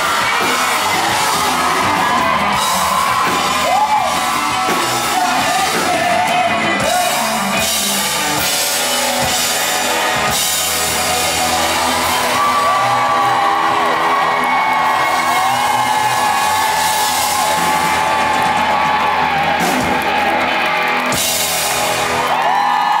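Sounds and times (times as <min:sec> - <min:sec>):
audience whooping and cheering: 0:00.0 - 0:23.0
live rock band playing: 0:00.0 - 0:23.0.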